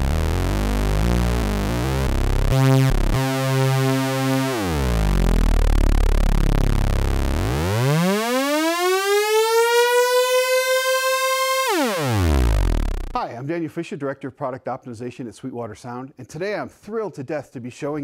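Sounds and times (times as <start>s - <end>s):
synthesizer tone sweeping in pitch: 0.0s - 13.2s.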